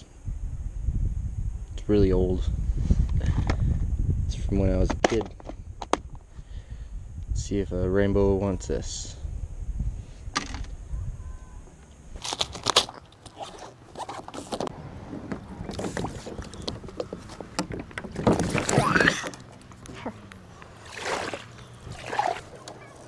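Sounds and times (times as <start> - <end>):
knocks and scrapes on hull: 12.7 - 20.2
kayak paddle strokes: 13.1 - 23.0
water swishing: 18.1 - 23.0.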